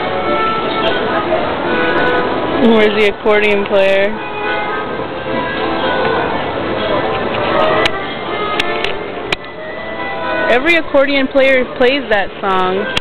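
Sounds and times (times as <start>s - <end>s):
accordion playing a tune: 0.0s - 13.0s.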